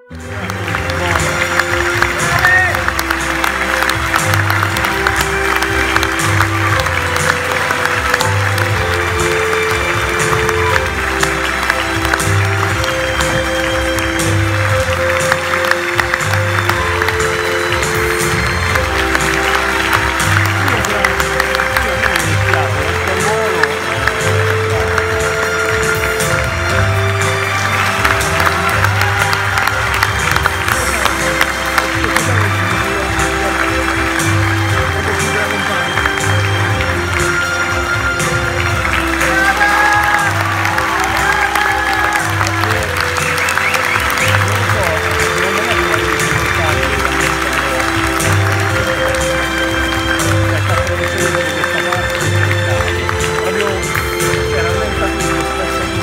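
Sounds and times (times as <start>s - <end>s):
audience applause: 0.0s - 56.0s.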